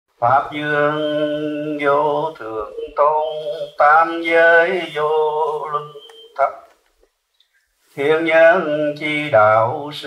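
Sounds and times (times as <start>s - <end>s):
man chanting: 0.2s - 6.8s, 8.0s - 10.0s.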